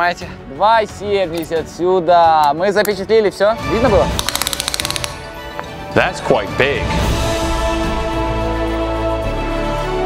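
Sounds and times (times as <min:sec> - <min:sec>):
background music: 0:00.0 - 0:10.0
tape measure clicking: 0:04.2 - 0:05.2.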